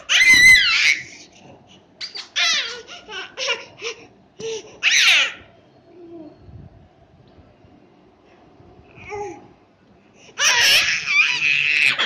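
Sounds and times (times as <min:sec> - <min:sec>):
baby squealing: 0:00.0 - 0:01.2, 0:02.0 - 0:03.7, 0:04.8 - 0:05.4, 0:10.4 - 0:12.0.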